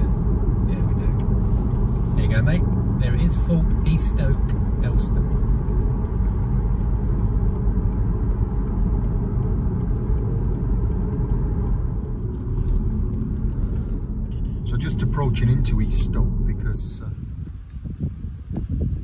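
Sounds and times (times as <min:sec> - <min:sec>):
car road rumble inside cabin: 0:00.0 - 0:19.0.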